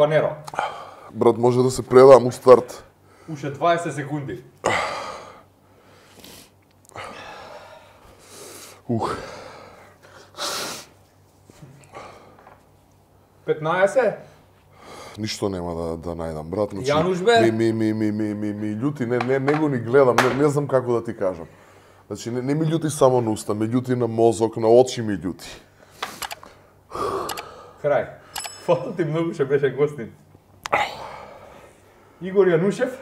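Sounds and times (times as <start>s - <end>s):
man breathing: 4.6s - 12.6s, 14.7s - 15.2s, 21.5s - 22.1s, 25.7s - 28.5s, 30.7s - 32.2s
man gasping in pain: 26.9s - 27.8s.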